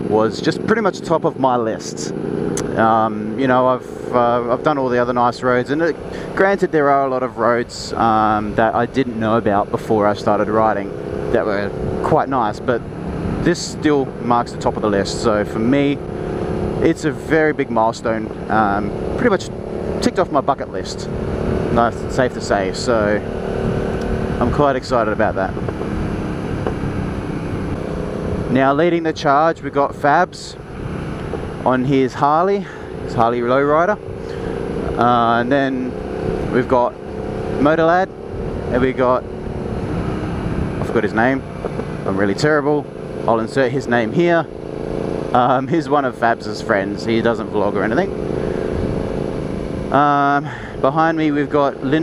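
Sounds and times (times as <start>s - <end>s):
motorcycle engine cruising: 0.0s - 52.0s
riding wind rushing: 4.1s - 52.0s.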